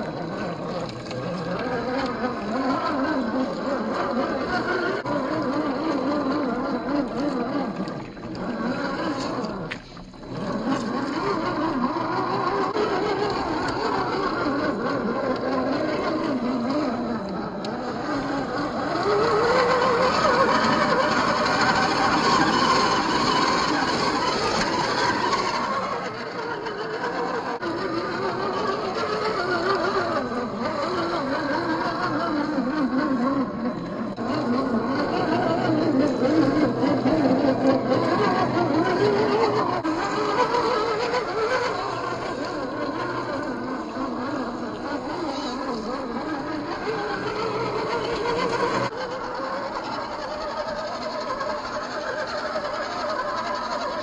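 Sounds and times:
electric motor whine: 0.0 - 54.0.

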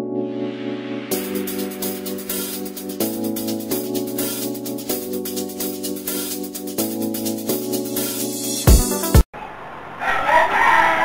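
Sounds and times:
music: 0.0 - 9.3
rooster crowing: 10.0 - 11.0.

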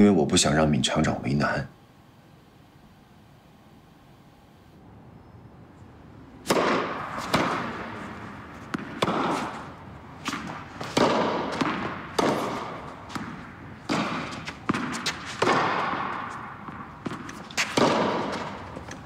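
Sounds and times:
racket hitting tennis ball: 6.4 - 19.0
tennis ball bouncing: 6.4 - 19.0.

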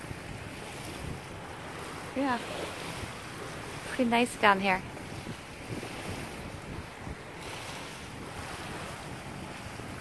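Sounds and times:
rush of wind: 0.0 - 10.0
waves washing on gravel shore: 0.0 - 10.0
wind buffeting microphone: 0.0 - 10.0.

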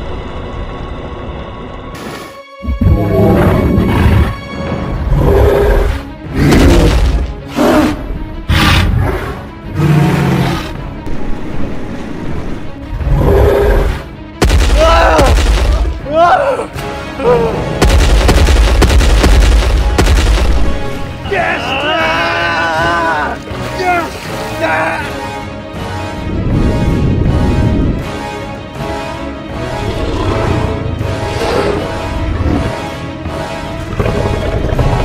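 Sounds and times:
action film soundtrack: 0.0 - 35.0
loud booming hits: 14.4 - 16.0, 17.8 - 20.9
voices crying out: 21.2 - 25.2.

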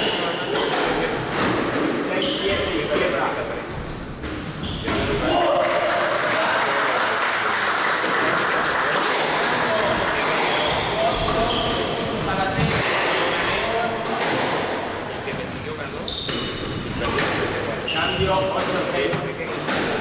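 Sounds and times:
sneaker squeaks: 2.1 - 2.9, 4.4 - 5.2, 9.8 - 12.1, 15.9 - 17.0, 17.8 - 18.6.

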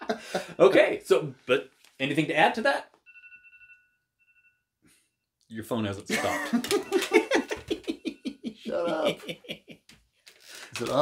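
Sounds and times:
phone alarm beep: 3.0 - 5.2, 6.8 - 8.5.

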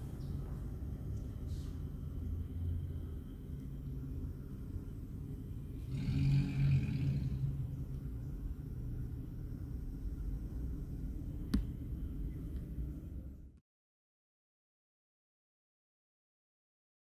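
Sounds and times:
low background rumble: 0.0 - 13.6.

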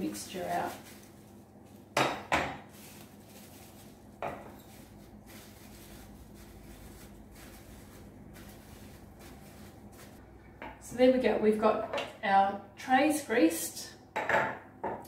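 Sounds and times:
plastic wrap rubbing and rustling: 0.0 - 10.2.

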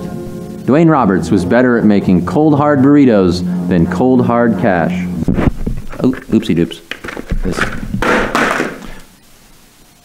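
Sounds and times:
sudden knock or thud: 7.0 - 9.0.

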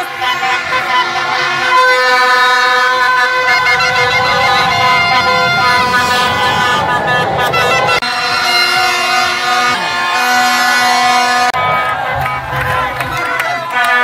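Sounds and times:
vuvuzela horns blowing: 0.0 - 14.0.

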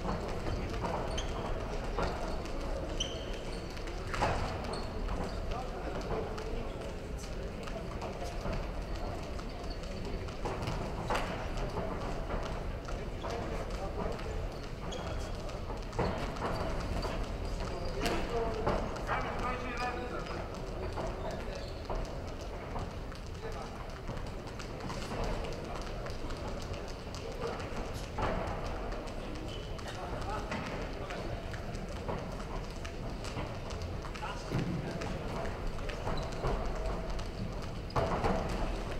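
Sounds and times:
boxers' footwork on canvas: 0.0 - 19.4, 20.0 - 38.9.

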